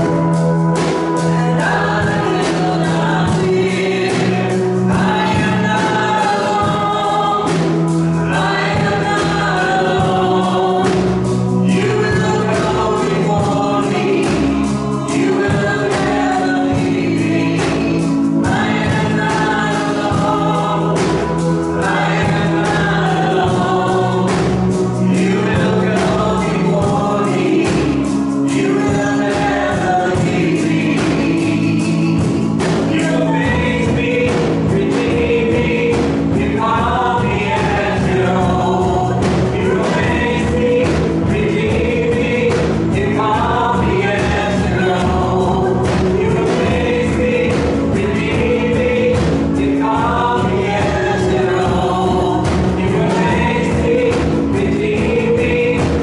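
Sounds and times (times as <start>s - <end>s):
group singing worship song: 0.0s - 56.0s
instrumental backing with beat: 0.0s - 56.0s.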